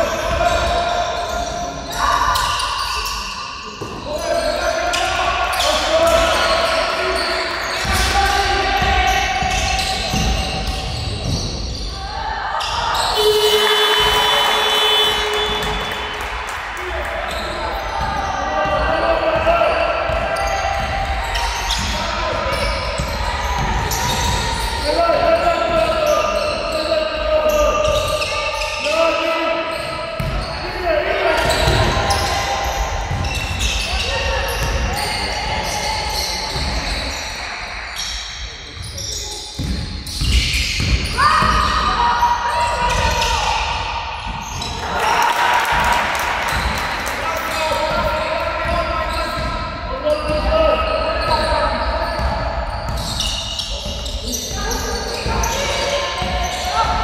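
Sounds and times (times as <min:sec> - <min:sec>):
basketball dribbled on wooden floor: 0:39.6 - 0:41.6.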